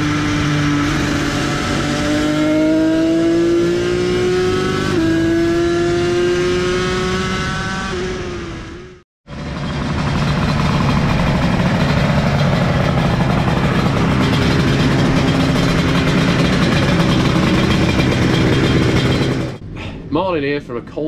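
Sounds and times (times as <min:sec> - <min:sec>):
two-stroke motorcycle engine running: 0:09.3 - 0:19.6.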